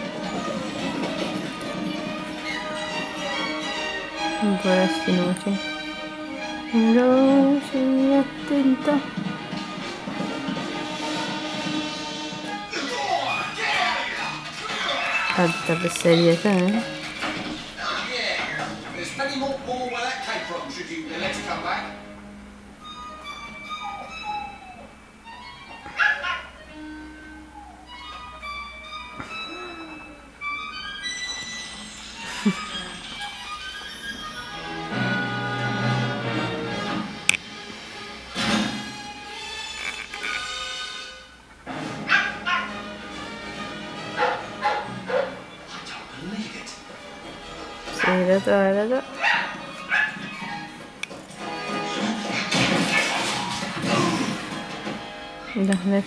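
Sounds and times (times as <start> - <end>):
film score music from television: 0.0 - 56.0
dog barking: 25.9 - 26.5, 42.1 - 42.8, 44.2 - 45.4, 47.9 - 48.2, 49.2 - 50.7.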